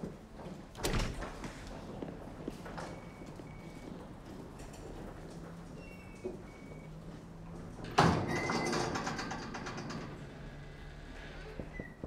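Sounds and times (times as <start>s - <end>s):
door banging shut: 0.8s - 1.4s.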